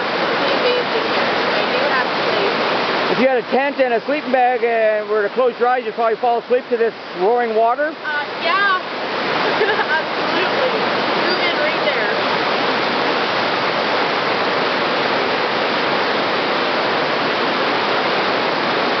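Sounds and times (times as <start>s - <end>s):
water rushing over rocks: 0.0s - 19.0s.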